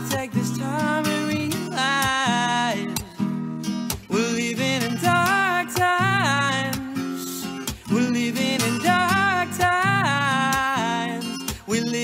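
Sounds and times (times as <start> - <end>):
acoustic guitar strumming: 0.0 - 12.0
man singing: 0.0 - 12.0.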